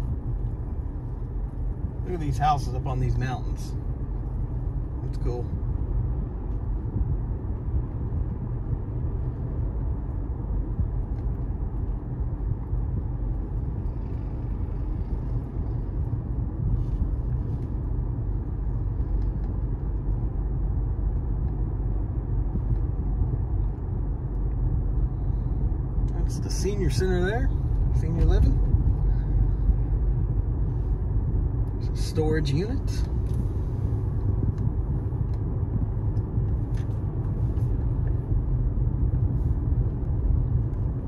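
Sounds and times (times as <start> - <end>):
car driving low rumble: 0.0 - 41.0.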